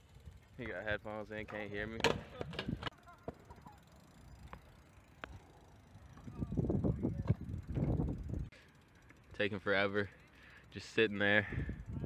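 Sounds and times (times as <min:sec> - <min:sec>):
bike tyres rumbling on ramp: 0:01.6 - 0:08.5.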